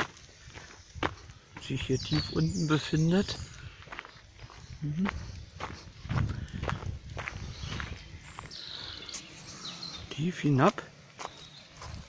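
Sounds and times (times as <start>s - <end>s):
footsteps on dirt path: 0.0s - 12.0s.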